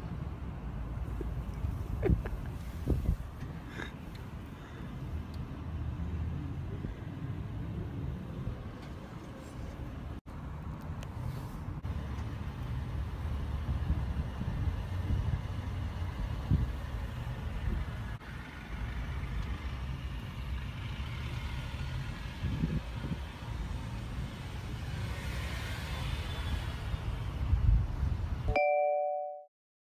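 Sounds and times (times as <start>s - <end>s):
engines rumbling: 0.0s - 28.5s
vehicle driving past: 11.4s - 27.6s.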